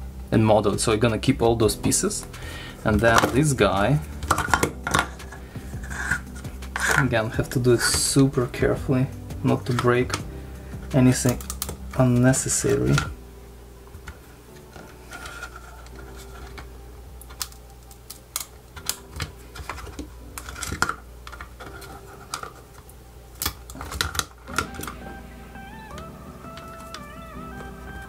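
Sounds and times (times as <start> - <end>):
quiet background music: 0.0 - 28.0
hard plastic clicks and creaks: 11.2 - 13.1, 25.9 - 28.0.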